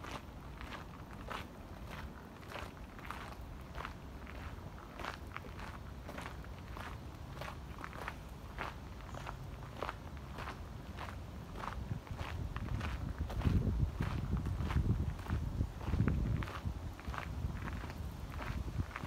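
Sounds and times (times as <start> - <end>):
footsteps on garden path: 0.0 - 19.0
low steady microphone rumble: 0.0 - 19.0.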